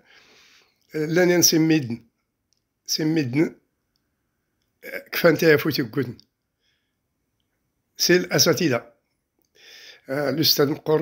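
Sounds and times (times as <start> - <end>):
man's voice: 0.9 - 2.0, 2.9 - 3.6, 4.8 - 6.2, 8.0 - 8.9, 10.0 - 11.0.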